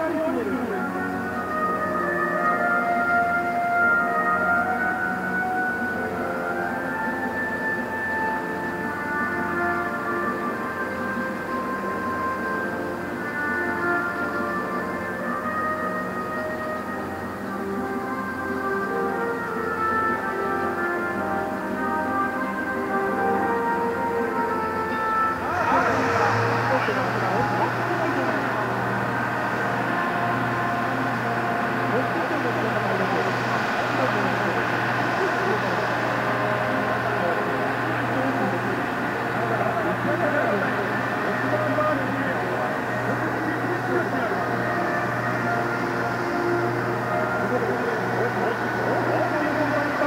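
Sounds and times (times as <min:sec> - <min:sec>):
machine humming: 0:00.0 - 0:50.0
murmur of voices: 0:00.0 - 0:50.0
music: 0:00.0 - 0:50.0.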